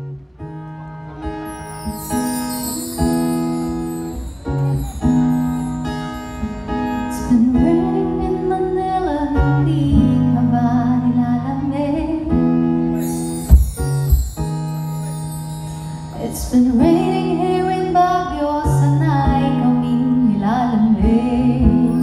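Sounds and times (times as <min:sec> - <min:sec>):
acoustic guitar strumming chords: 0:00.0 - 0:11.4, 0:12.2 - 0:20.2.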